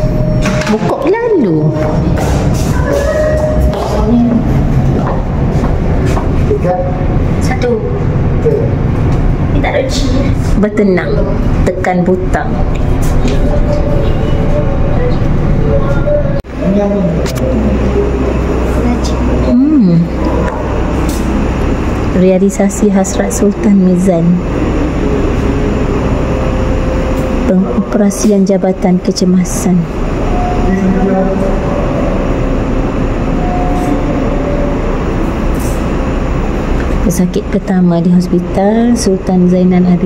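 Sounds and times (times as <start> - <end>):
low indoor rumble: 0.0 - 40.0
faint voices: 0.8 - 36.3.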